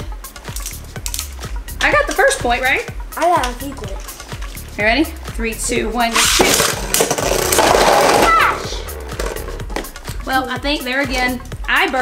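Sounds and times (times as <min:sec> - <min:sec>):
spinning tops whirring and clashing: 0:06.1 - 0:09.9.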